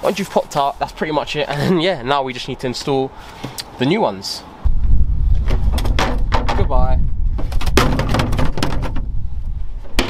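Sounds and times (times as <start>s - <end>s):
wind rumble on microphone: 4.6s - 10.0s
hard plastic knocks and rattles: 5.4s - 9.1s.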